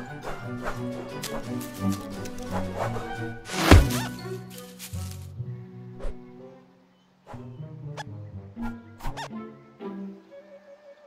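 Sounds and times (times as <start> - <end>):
orchestral film score: 0.0 - 11.0.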